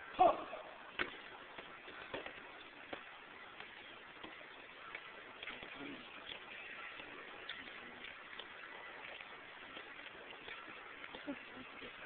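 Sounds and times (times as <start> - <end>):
faint footsteps on pavement: 0.0 - 12.0
low hiss: 0.0 - 12.0.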